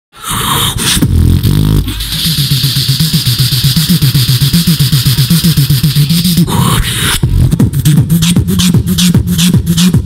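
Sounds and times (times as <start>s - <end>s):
human beatboxing: 0.2s - 10.0s.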